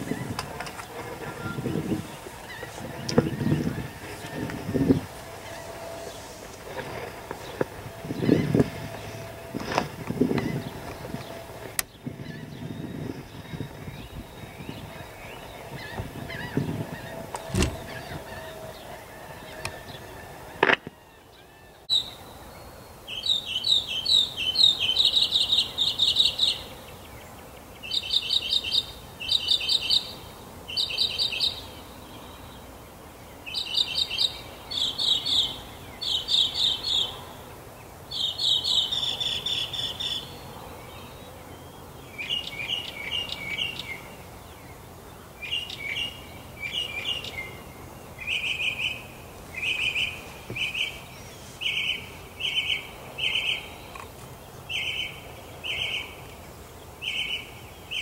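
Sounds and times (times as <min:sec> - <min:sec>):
songbirds chirping: 0:00.0 - 0:58.0.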